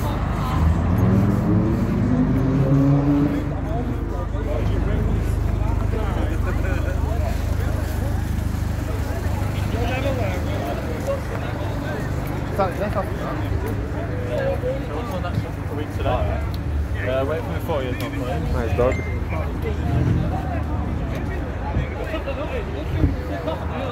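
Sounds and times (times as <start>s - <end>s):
car engine revving: 0.0s - 6.0s.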